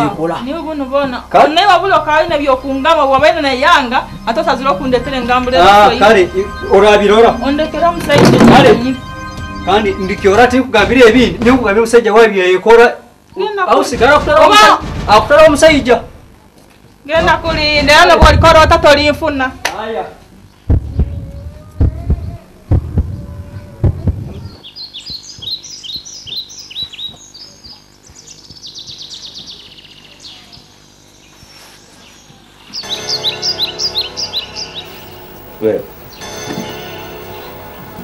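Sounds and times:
birds chirping: 0.0s - 12.4s, 20.3s - 38.0s
dull low thumps: 0.9s - 11.9s, 20.6s - 24.6s.

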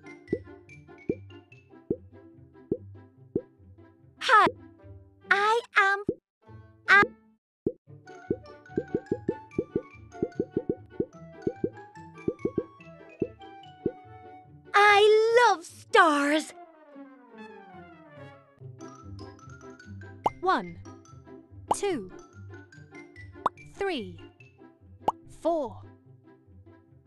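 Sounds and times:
plucked cartoon music: 0.0s - 27.0s
popping sound effects: 8.8s - 10.8s, 11.5s - 12.7s.

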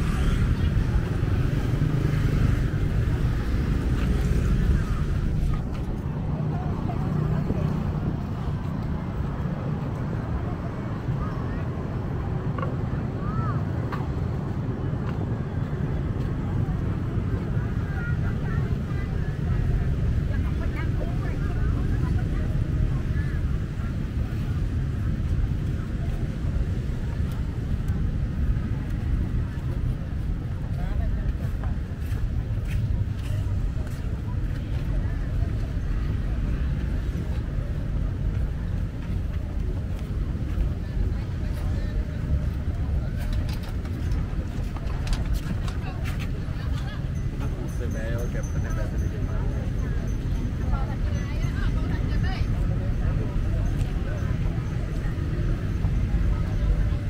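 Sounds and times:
low rumble of road traffic: 0.0s - 57.0s
voices of passersby: 0.0s - 57.0s.

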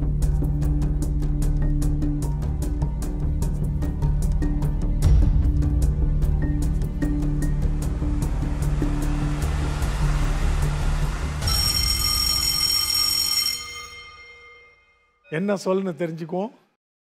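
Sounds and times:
countdown music with pulsing bass: 0.0s - 12.5s
bright ringing chime: 11.4s - 15.4s.

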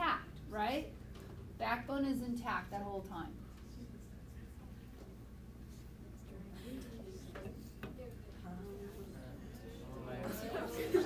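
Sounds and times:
background chatter of voices: 3.4s - 11.0s.

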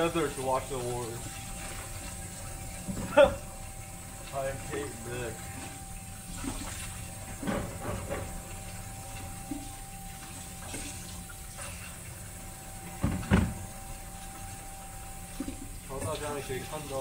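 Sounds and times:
water running from a tap: 0.0s - 17.0s.

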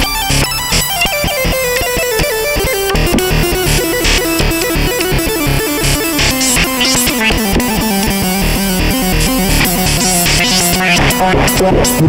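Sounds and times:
synthesizer melody: 0.2s - 12.0s.

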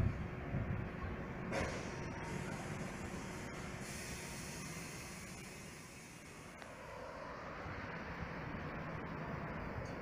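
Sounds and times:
road and air noise: 0.0s - 10.0s.

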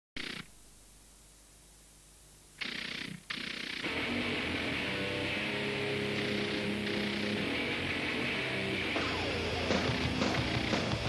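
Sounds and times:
low steady hiss: 0.2s - 9.7s
distorted heavy metal burst: 2.6s - 11.0s.

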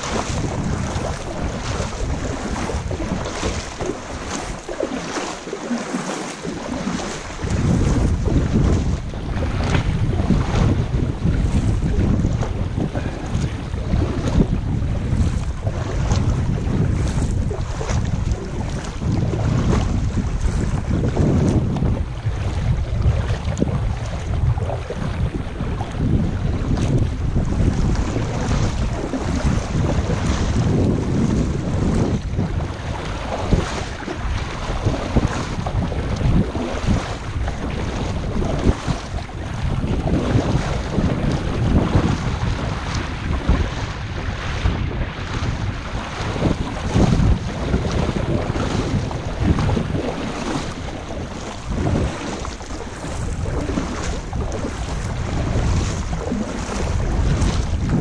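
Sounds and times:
water sloshing against kayak: 0.0s - 58.0s
wind buffeting microphone: 0.0s - 58.0s.

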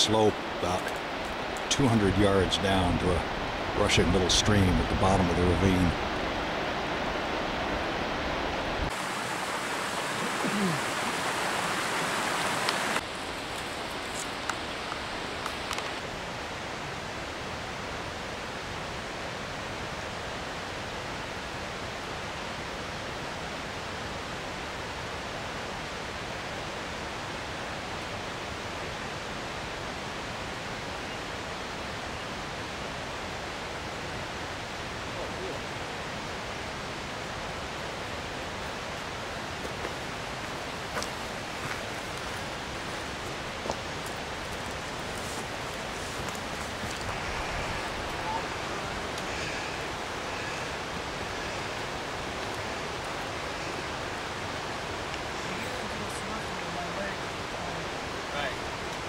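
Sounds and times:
creek rushing over rocks: 0.0s - 59.0s
outdoor ambience hiss: 0.0s - 59.0s.

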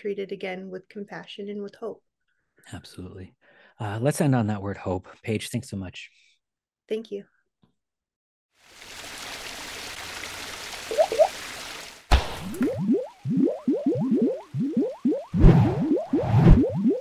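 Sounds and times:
rising squishy bloops: 10.9s - 11.3s, 12.1s - 17.0s.

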